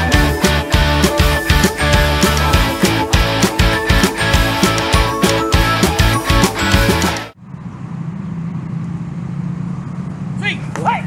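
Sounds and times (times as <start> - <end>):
rock music: 0.0 - 7.4
outdoor noise: 0.0 - 11.0.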